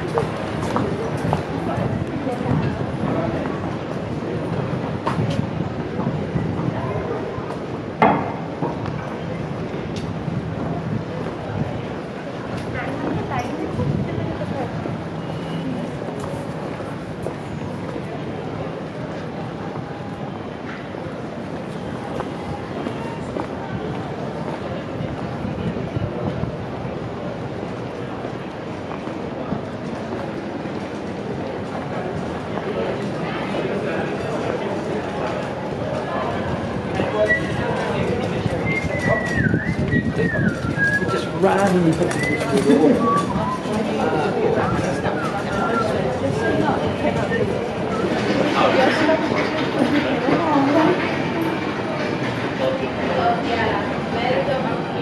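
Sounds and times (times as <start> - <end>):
footsteps on street: 0.0 - 54.2
faint voices of passers-by: 0.0 - 55.0
low city rumble: 0.0 - 55.0
murmur of pedestrians: 0.0 - 55.0
high thin whistling tone: 38.5 - 46.6.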